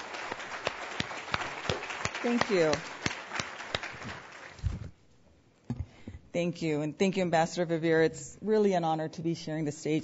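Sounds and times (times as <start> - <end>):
audience applause: 0.0 - 4.6
individual claps: 0.0 - 4.7.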